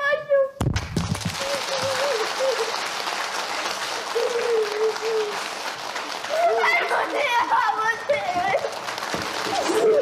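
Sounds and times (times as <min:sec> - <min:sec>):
audience applauding: 0:00.8 - 0:10.0.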